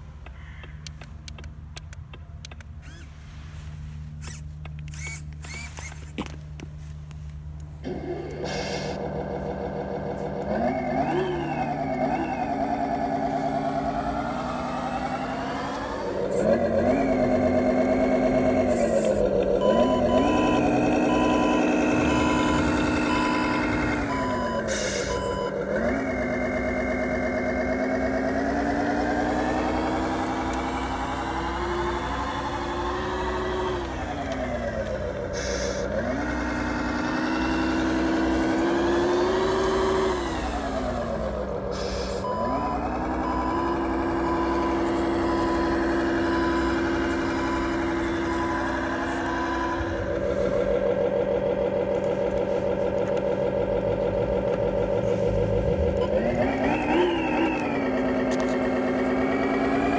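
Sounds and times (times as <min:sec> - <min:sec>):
simulated diesel truck engine: 0:00.0 - 0:59.9
reversing alarm beep: 0:19.6 - 0:25.6, 0:42.2 - 0:50.8.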